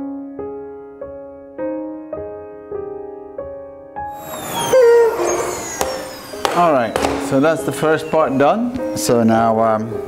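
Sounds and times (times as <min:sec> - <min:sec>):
electric motor winding down: 0:04.2 - 0:07.2
wavering tone: 0:04.2 - 0:08.7.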